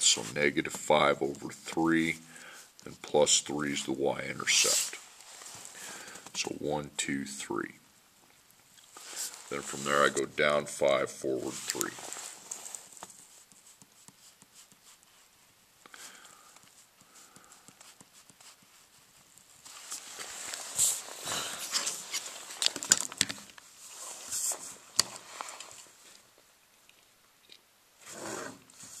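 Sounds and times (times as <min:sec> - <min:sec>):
pen scratching on paper: 0:13.2 - 0:15.3, 0:16.7 - 0:19.5
pen ticking on paper: 0:13.5 - 0:15.1, 0:16.6 - 0:19.5.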